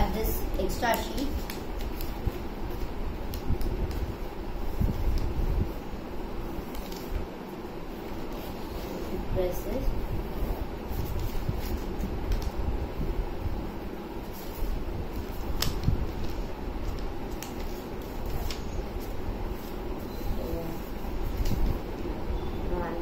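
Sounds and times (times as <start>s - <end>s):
low background hum: 0.0s - 23.0s
paper folding and crinkling: 0.6s - 5.8s, 6.4s - 7.3s, 10.3s - 12.7s, 14.2s - 22.0s.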